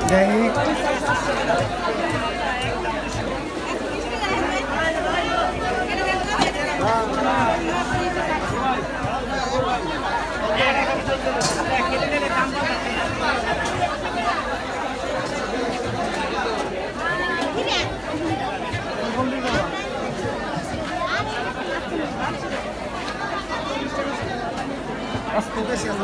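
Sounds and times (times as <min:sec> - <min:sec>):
crowd babble: 0:00.0 - 0:26.0.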